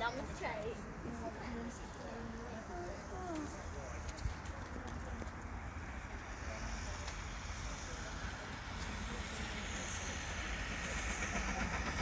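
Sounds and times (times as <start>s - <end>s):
people talking quietly: 0.0s - 12.0s
steady low rumble: 0.2s - 12.0s.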